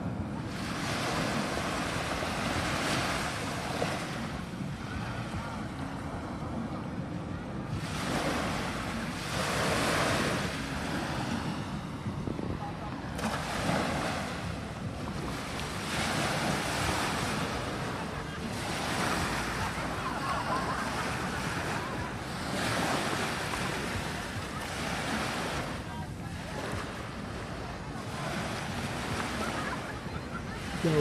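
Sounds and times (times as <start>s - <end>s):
small waves breaking on shore: 0.0s - 6.6s, 7.6s - 31.0s
wind buffeting microphone: 0.0s - 31.0s.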